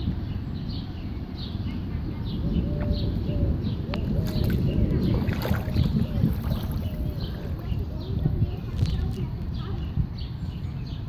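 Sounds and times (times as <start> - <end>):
wind rumble on microphone: 0.0 - 11.0
footsteps splashing through water: 3.9 - 7.7.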